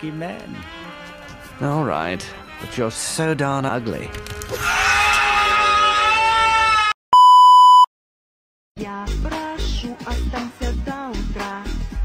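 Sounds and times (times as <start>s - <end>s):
music: 0.0s - 4.6s, 8.8s - 12.0s
person screaming: 4.5s - 7.0s
electronic beep: 7.2s - 7.9s.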